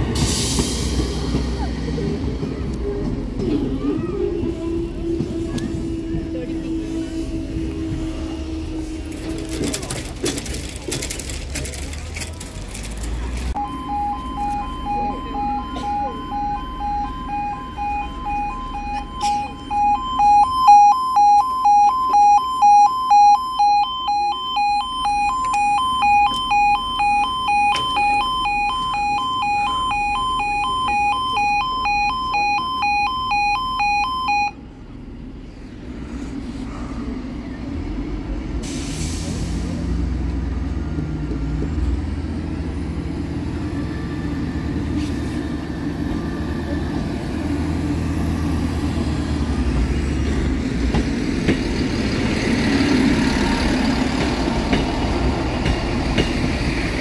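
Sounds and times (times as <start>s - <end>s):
pulsing two-tone crossing alarm: 13.6s - 34.6s.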